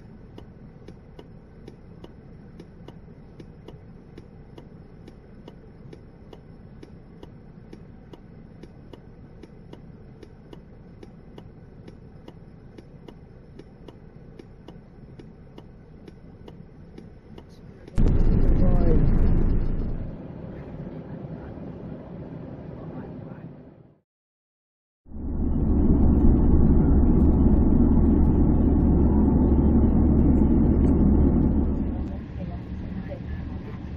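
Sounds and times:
turn indicator ticking: 0.2s - 18.0s
loud rush of noise: 18.0s - 20.3s.

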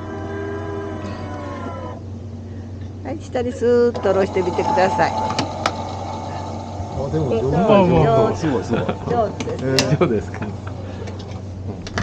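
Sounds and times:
ice cream machine motor whine: 3.9s - 11.6s.

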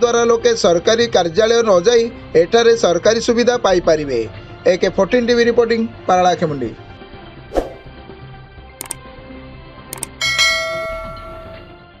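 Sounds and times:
quick clicks: 10.0s - 10.2s
bell chime: 10.2s - 11.8s.

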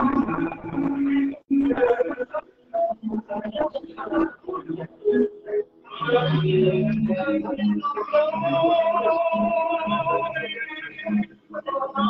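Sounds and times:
voices speaking in a hall: 0.0s - 12.0s.

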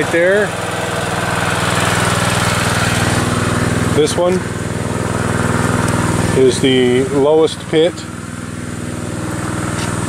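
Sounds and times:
small petrol engine running: 0.0s - 10.0s.

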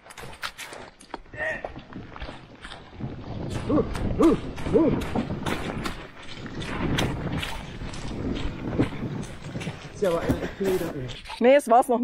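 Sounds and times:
footsteps on muddy track: 0.0s - 12.0s
cart and hull knocks and rattles: 1.8s - 11.3s
person speaking: 10.0s - 12.0s.

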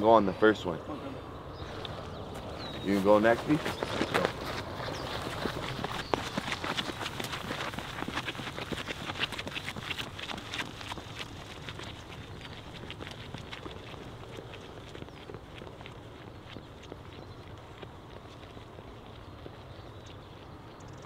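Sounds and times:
running footsteps on dirt trail: 1.6s - 21.0s.

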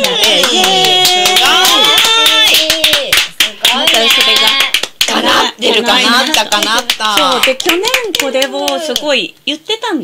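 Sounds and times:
women clapping quickly: 0.0s - 5.4s, 6.0s - 9.1s.

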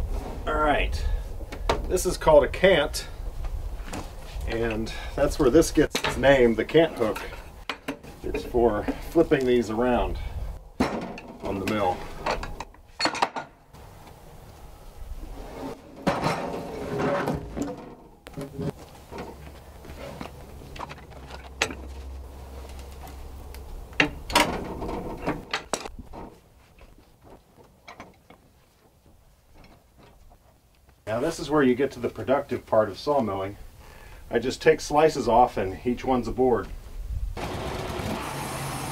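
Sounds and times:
metal clunks: 10.8s - 13.6s.

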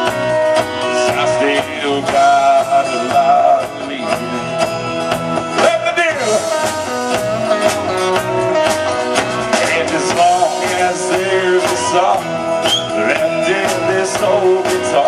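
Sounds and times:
country band playing: 0.0s - 15.0s.

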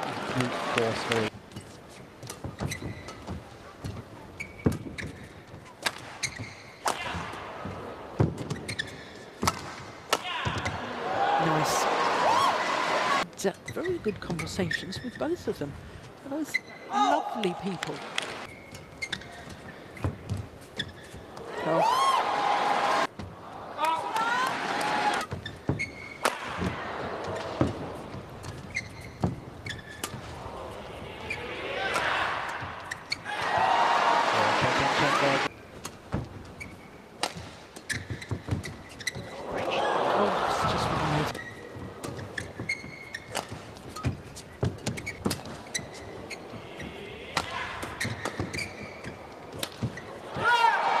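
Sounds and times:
crowd cheering and applauding: 0.0s - 1.3s, 11.0s - 13.2s, 21.8s - 23.1s, 33.4s - 35.5s
shoe squeaks on court: 1.6s - 3.4s, 4.4s - 6.8s, 8.4s - 9.3s, 16.5s - 16.8s, 18.4s - 21.2s, 25.2s - 26.2s, 28.5s - 30.2s, 36.6s - 37.1s, 37.8s - 39.4s, 41.3s - 47.0s, 47.8s - 50.2s.

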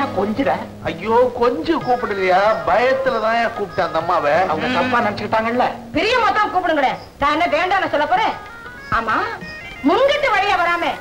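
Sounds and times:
film soundtrack music: 0.0s - 8.7s
steady held notes: 0.0s - 8.8s.

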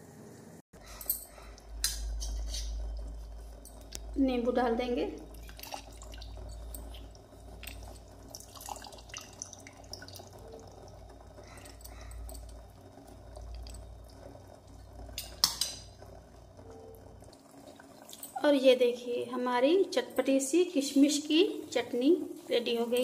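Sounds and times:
low steady hum: 0.0s - 23.0s
juice dripping: 0.8s - 20.9s.

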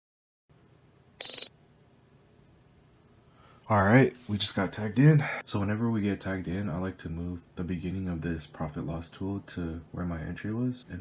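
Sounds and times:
short high-pitched beep: 1.2s - 1.5s.

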